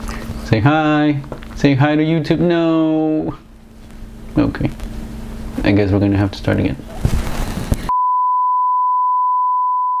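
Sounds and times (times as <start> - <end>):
steady sine test tone: 7.6 - 10.0.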